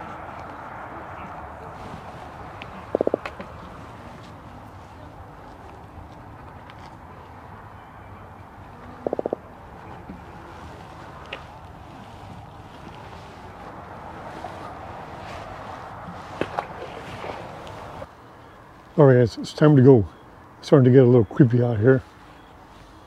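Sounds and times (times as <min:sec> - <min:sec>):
wind: 0:00.0 - 0:23.0
fish croaking: 0:02.8 - 0:03.4, 0:09.0 - 0:09.5.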